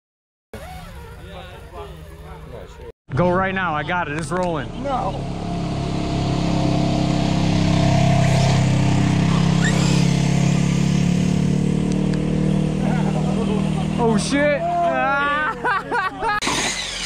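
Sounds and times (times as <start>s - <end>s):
vehicle engine driving by: 0.6s - 17.0s.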